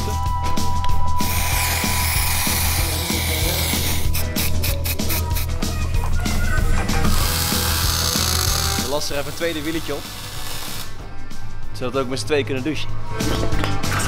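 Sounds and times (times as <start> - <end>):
background music with low beat: 0.0 - 14.0
tool hiss: 1.2 - 5.5, 7.0 - 11.0
rapid ratchet clicks: 7.0 - 10.9.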